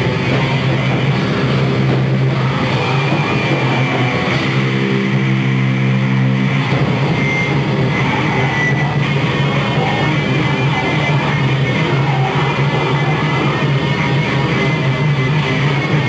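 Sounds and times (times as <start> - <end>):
rock band playing live: 0.0 - 16.0.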